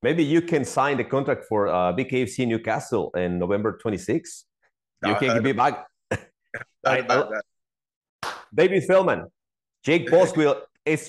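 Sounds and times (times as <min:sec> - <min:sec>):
man's voice: 0:05.0 - 0:05.8, 0:06.6 - 0:07.4, 0:09.9 - 0:11.0.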